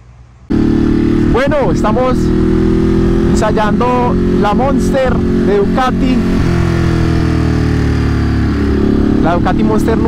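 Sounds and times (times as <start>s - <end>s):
motorcycle engine running: 0.5s - 10.0s.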